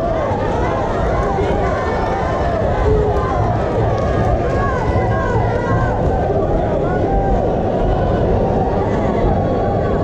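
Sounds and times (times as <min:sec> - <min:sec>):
crowd hubbub: 0:00.0 - 0:10.0
crowd shouting: 0:00.0 - 0:10.0.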